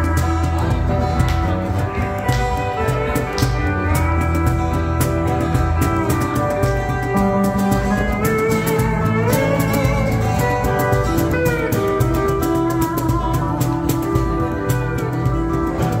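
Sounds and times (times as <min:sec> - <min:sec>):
light percussion beat: 0:00.0 - 0:16.0
pedal steel guitar solo: 0:00.0 - 0:16.0
strummed acoustic guitar: 0:00.0 - 0:16.0.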